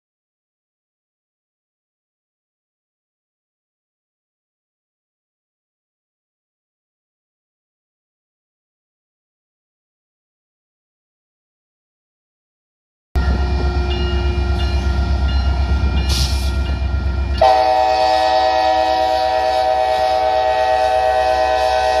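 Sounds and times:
diesel locomotive engine rumble: 0:13.2 - 0:22.0
locomotive air horn chord: 0:16.1 - 0:22.0.

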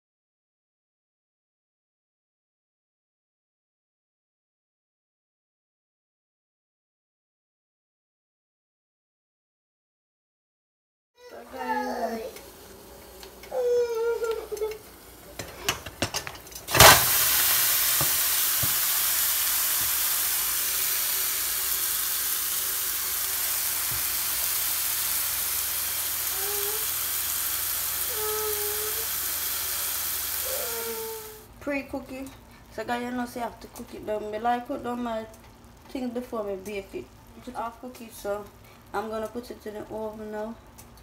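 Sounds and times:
meat sizzling in pot: 0:11.3 - 0:31.8
meat clattering into pot: 0:15.4 - 0:18.9.

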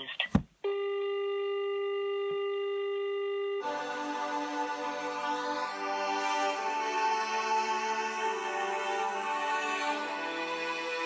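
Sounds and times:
steady telephone line tone: 0:00.6 - 0:03.8.

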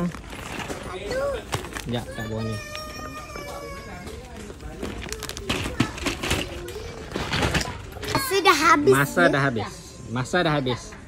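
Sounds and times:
children's voices: 0:05.0 - 0:09.9.

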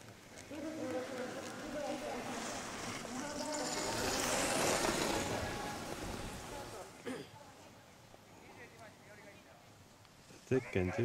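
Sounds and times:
skis scraping on snow: 0:00.0 - 0:07.0.

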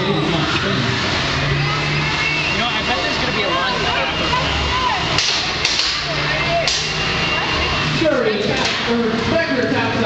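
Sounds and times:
robot motors humming: 0:00.0 - 0:10.0
spectators chattering and shouting: 0:00.0 - 0:10.0.

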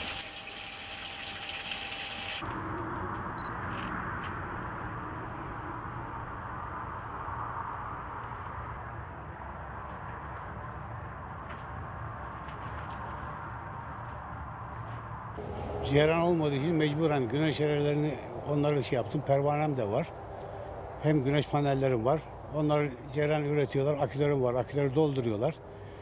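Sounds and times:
water pump running: 0:00.0 - 0:02.4
water spraying from hose: 0:00.0 - 0:02.4.

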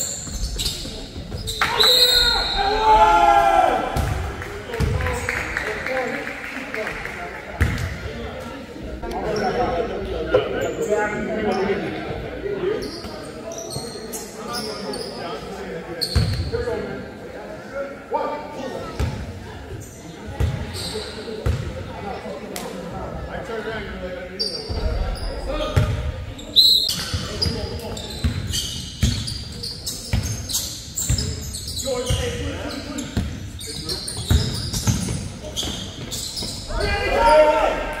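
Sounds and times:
sneakers squeaking: 0:00.0 - 0:03.0, 0:10.6 - 0:16.6, 0:18.8 - 0:21.8, 0:24.4 - 0:38.0
people talking: 0:00.0 - 0:28.6, 0:31.1 - 0:38.0.

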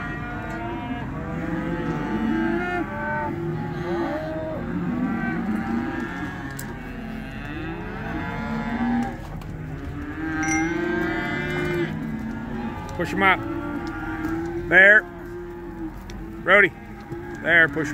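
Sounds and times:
cattle mooing: 0:00.0 - 0:17.9.

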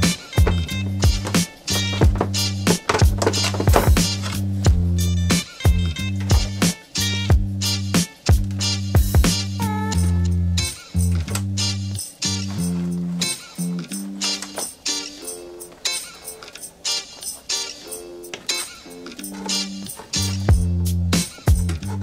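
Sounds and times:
background music with bass: 0:00.0 - 0:15.7, 0:18.9 - 0:22.0.

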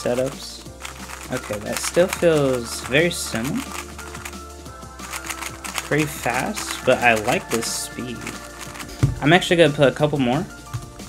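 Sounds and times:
background music: 0:00.0 - 0:11.0
puzzle cube clicking: 0:00.7 - 0:04.4, 0:05.0 - 0:09.0.

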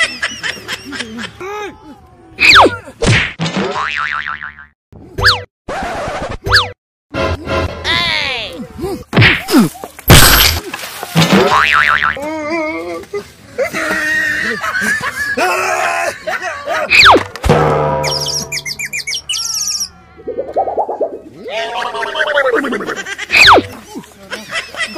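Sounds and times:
cartoon boings: 0:16.9 - 0:22.6
whistle glides: 0:18.0 - 0:21.0.

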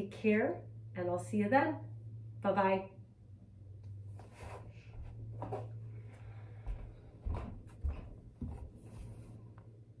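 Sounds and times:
steady low hum: 0:00.0 - 0:10.0
bare footsteps on floor: 0:04.2 - 0:09.3.

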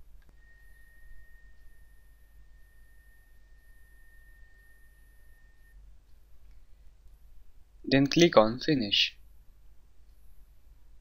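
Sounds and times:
thin high-pitched whine: 0:00.0 - 0:06.6
low hum: 0:00.0 - 0:07.8.

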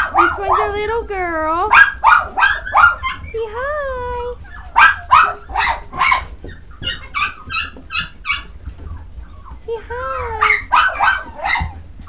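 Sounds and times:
puppy yipping: 0:00.0 - 0:12.0.

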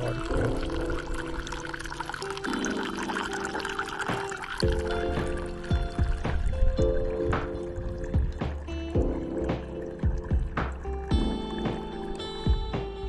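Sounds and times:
water pouring from hose into cup: 0:00.0 - 0:12.7
background music plucked notes: 0:00.0 - 0:13.0.

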